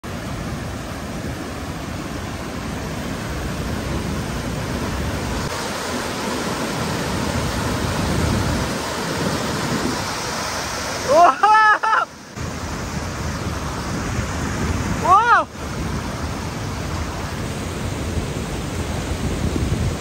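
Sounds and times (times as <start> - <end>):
river rapids rushing over boulders: 0.0 - 20.0.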